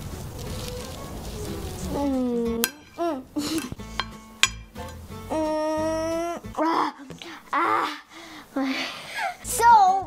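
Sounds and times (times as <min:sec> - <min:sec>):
faint background music: 0:00.0 - 0:10.0
child humming with closed mouth: 0:05.3 - 0:07.0.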